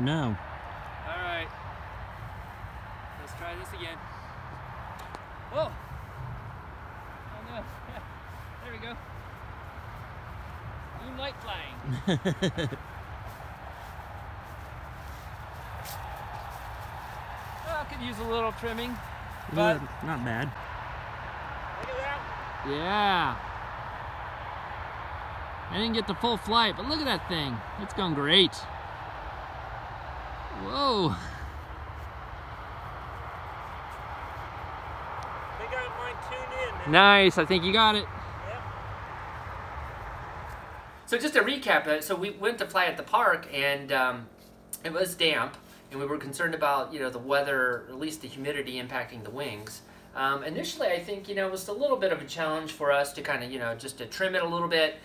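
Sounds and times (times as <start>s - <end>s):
low outdoor rumble: 0.0s - 52.2s
man exclaiming: 30.6s - 31.5s.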